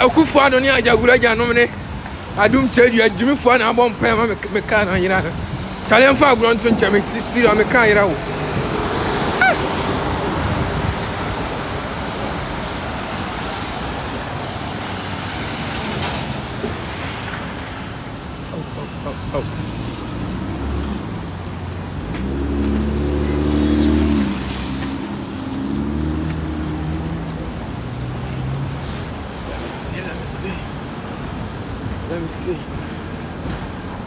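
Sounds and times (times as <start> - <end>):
city traffic: 0.0 - 34.0
vehicle engine running nearby: 18.5 - 29.4.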